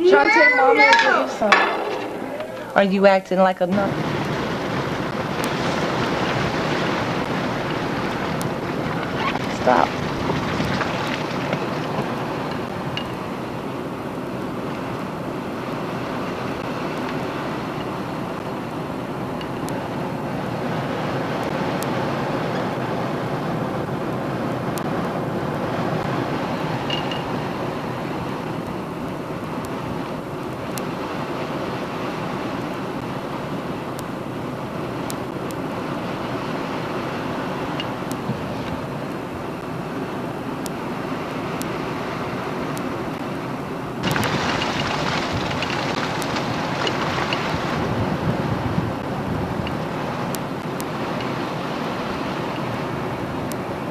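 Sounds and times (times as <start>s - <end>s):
vehicle driving slowly: 3.7s - 53.9s.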